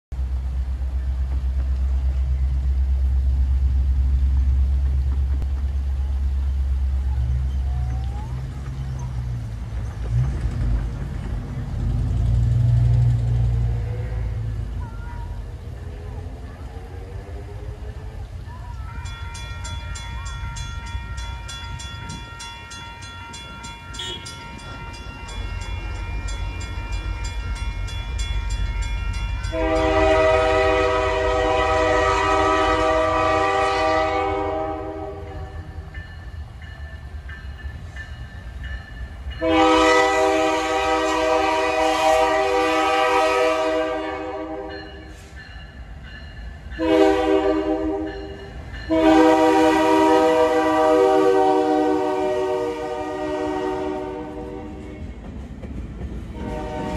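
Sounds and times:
railroad crossing bells ringing: 11.5 - 55.4.

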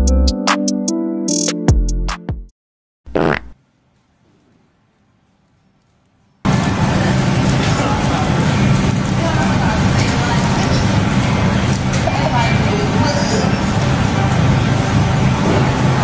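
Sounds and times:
supermarket din with voices: 6.5 - 16.0.

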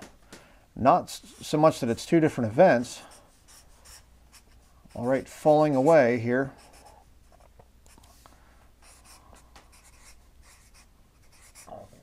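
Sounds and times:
marker scratching on paper: 3.4 - 8.0, 8.8 - 12.0.

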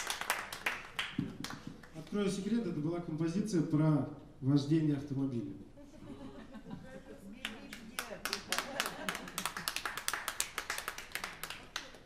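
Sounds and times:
sparse applause: 8.0 - 12.0.

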